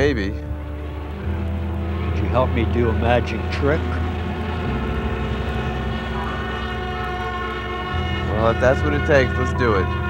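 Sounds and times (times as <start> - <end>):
droning held chord music: 0.0 - 10.0.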